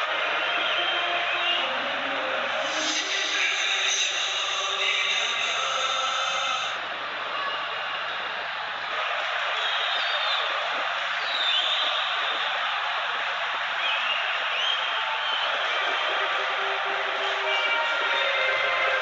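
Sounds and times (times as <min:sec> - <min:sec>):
crowd chanting: 0:00.0 - 0:19.0
stadium crowd noise: 0:00.0 - 0:19.0.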